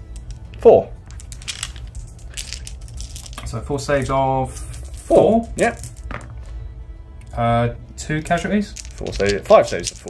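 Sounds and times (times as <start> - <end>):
plastic dice clicking in a tray: 0.0 - 3.5, 5.4 - 6.3, 8.6 - 10.0.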